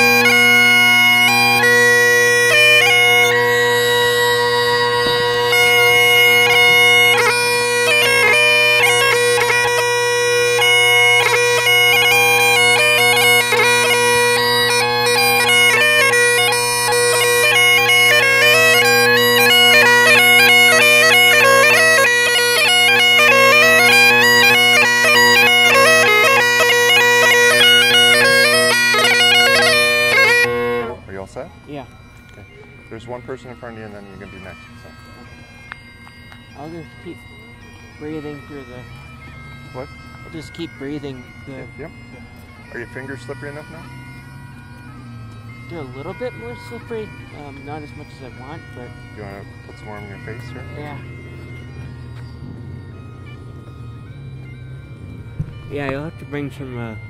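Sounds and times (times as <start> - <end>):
bagpipe melody over drones: 0.0 - 57.0
faint voices: 24.6 - 51.7.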